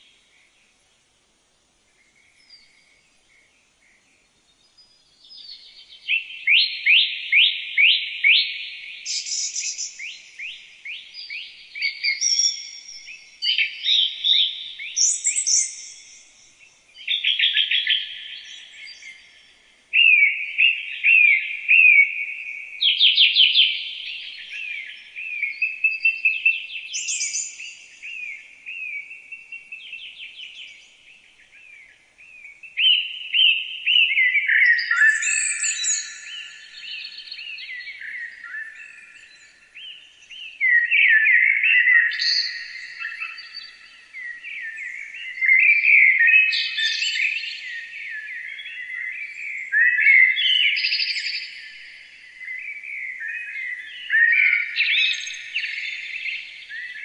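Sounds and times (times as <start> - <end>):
songbirds trilling and chirping: 0.0 - 57.0.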